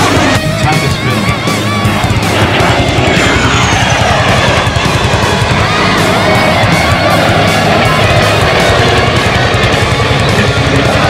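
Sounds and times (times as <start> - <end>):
aircraft flying past: 0.0 - 11.0
music with a steady beat: 0.0 - 11.0.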